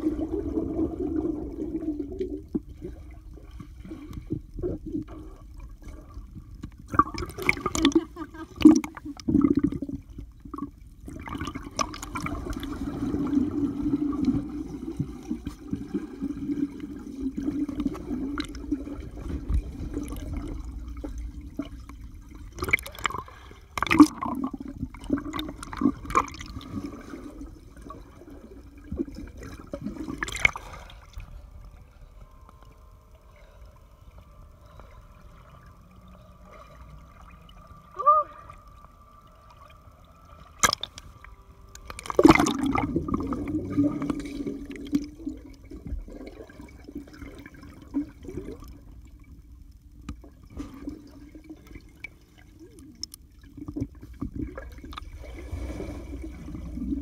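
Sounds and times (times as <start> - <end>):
churning water underwater: 0.0 - 57.0
faint steady tone: 0.0 - 57.0
sharp knocks underwater: 40.6 - 41.1.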